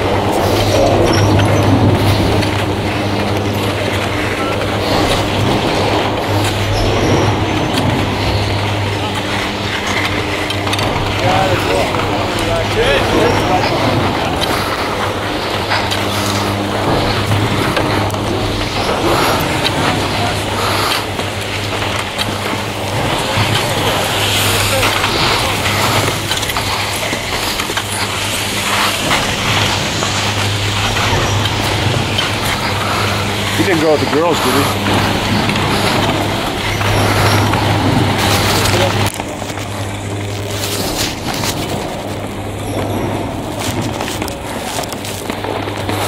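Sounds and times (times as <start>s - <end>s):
machinery hum and rumble: 0.0s - 46.0s
rolling wheels rattle: 0.0s - 46.0s
people talking indistinctly: 8.9s - 17.2s, 32.6s - 37.5s.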